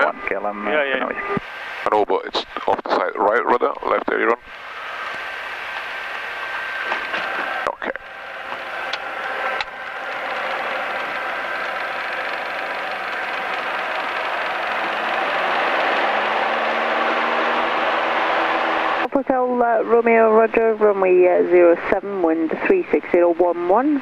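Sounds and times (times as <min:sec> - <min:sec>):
propeller aircraft engine drone: 0:02.5 - 0:23.0.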